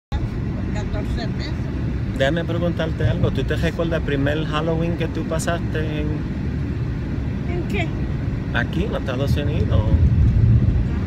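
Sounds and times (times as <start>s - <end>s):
car cabin road and engine rumble: 0.1s - 11.0s.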